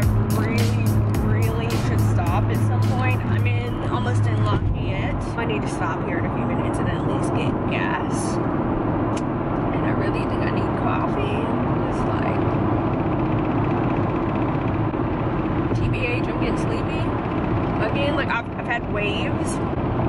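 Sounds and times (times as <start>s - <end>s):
car cabin road and engine noise: 0.0s - 20.0s.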